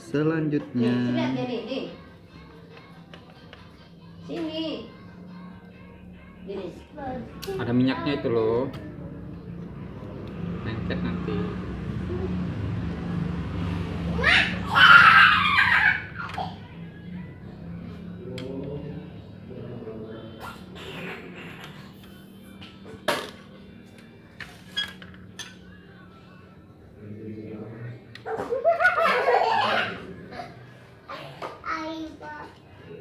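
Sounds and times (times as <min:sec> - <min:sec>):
child laughing loudly: 0:14.2 - 0:16.6, 0:28.3 - 0:30.5.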